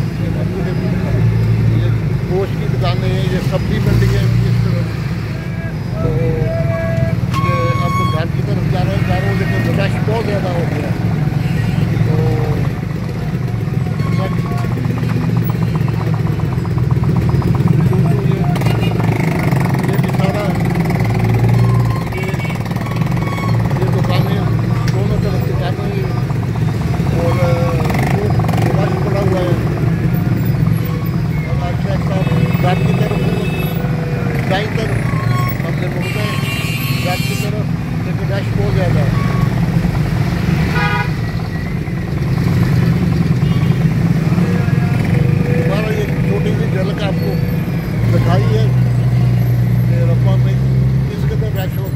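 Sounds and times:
street traffic: 0:00.0 - 0:51.9
small motorcycle engine running: 0:11.4 - 0:34.6.

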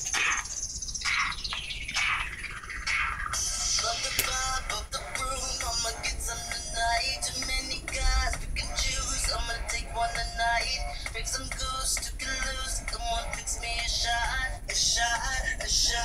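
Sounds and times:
person singing over backing track: 0:03.4 - 0:16.0.

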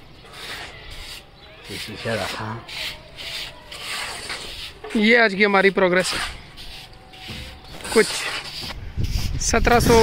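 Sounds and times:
broom brushing brick wall: 0:00.2 - 0:10.0.

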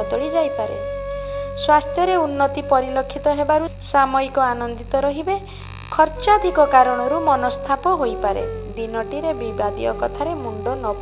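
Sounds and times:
low background drone: 0:00.0 - 0:11.0
person reading aloud: 0:06.0 - 0:11.0.

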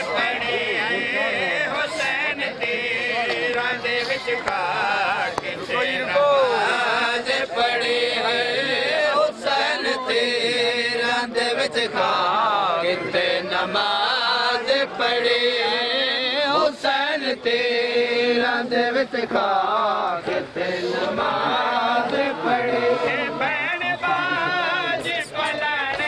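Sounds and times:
crowd of men chanting: 0:00.0 - 0:26.0.

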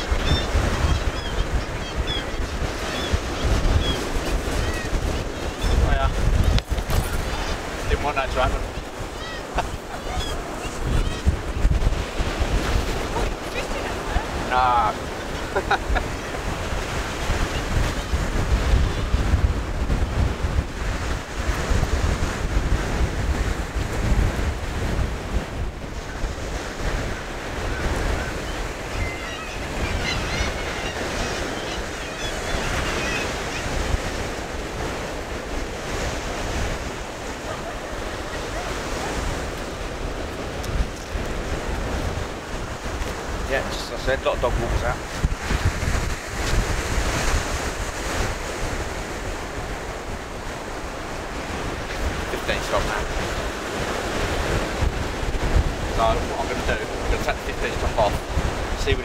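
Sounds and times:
small waves breaking: 0:00.0 - 0:59.0
wind buffeting microphone: 0:00.0 - 0:59.0.

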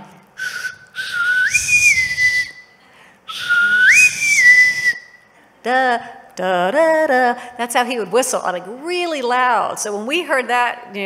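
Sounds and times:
woman whistling a call: 0:00.4 - 0:05.3.

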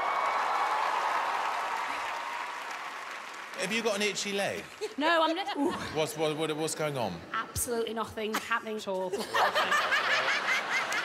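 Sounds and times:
audience laughing: 0:09.2 - 0:11.0.

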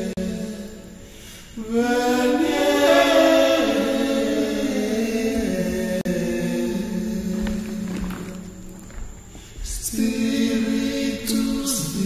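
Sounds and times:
unaccompanied choir singing: 0:00.0 - 0:12.0.

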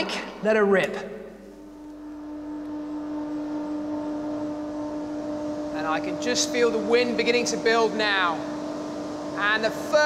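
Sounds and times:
fan mechanical hum with rushing air: 0:00.0 - 0:10.0.

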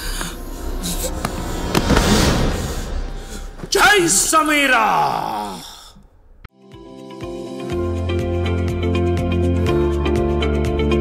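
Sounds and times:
background music: 0:00.0 - 0:04.8, 0:06.5 - 0:11.0.

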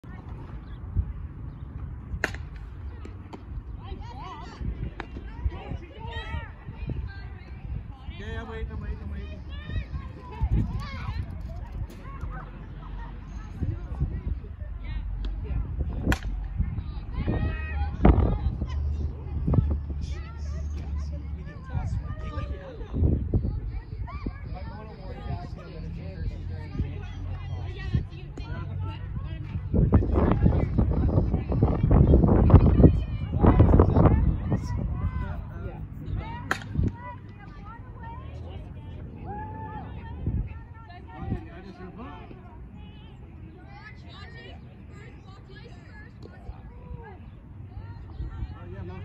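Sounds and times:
bat hitting softball: 0:02.1 - 0:03.5, 0:16.0 - 0:16.5, 0:36.4 - 0:37.0.

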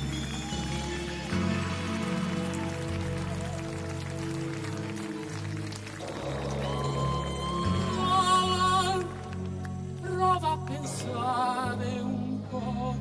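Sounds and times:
bass line: 0:00.0 - 0:13.0.

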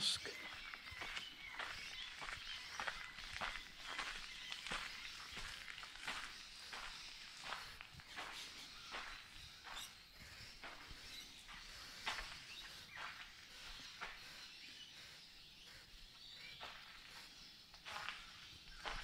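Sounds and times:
footsteps on concrete: 0:00.2 - 0:19.0.

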